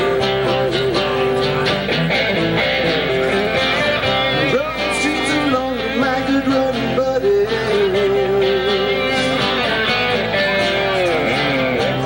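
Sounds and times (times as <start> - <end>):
live band with guitars: 0.0 - 12.0.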